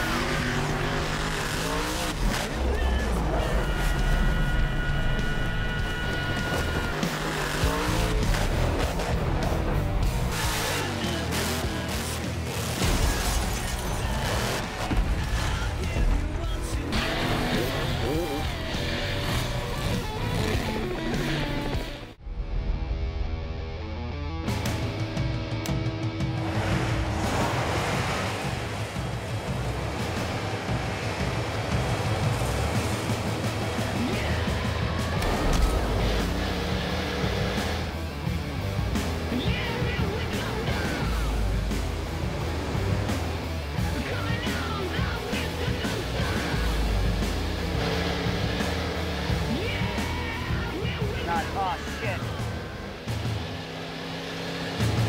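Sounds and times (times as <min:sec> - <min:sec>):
soundtrack music: 0:00.0 - 0:55.0
bus engine running hard: 0:26.2 - 0:55.0.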